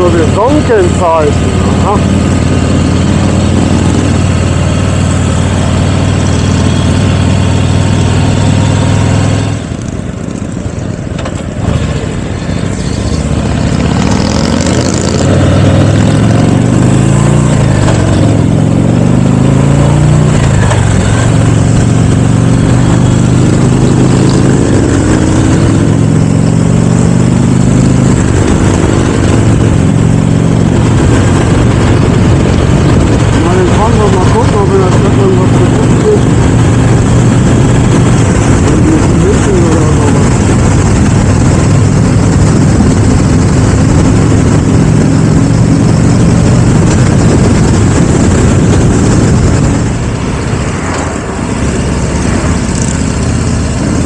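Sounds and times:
motorcycle engine running: 0:00.0 - 0:54.0
wind noise: 0:11.6 - 0:54.0.

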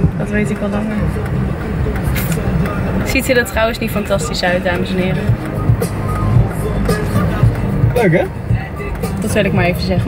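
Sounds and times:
engine and road rumble in car: 0:00.0 - 0:10.0.

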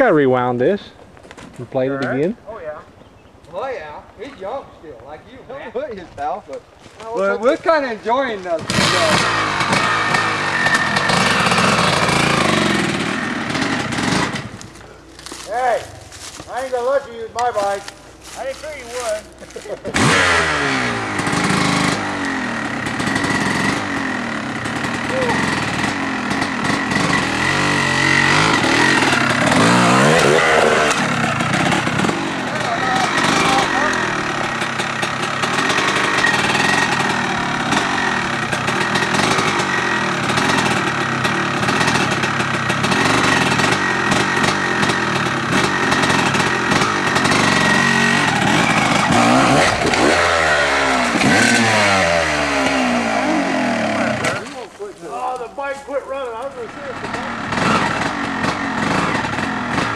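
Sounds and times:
dirt bike engines revving: 0:01.5 - 0:59.9.

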